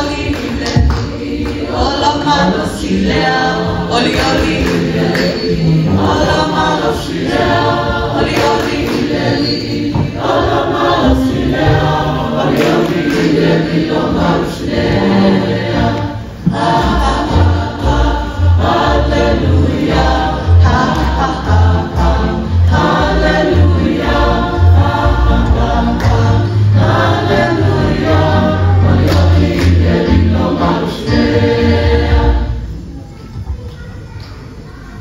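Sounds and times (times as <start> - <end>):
choir singing a hymn: 0.0 - 32.8.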